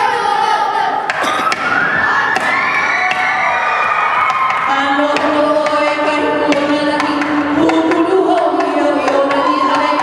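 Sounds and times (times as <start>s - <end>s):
boys chanting: 4.5s - 10.0s.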